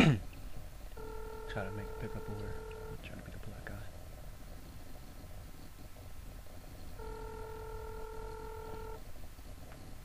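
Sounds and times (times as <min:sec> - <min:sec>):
telephone ringback tone: 0:01.0 - 0:03.0, 0:07.0 - 0:09.0.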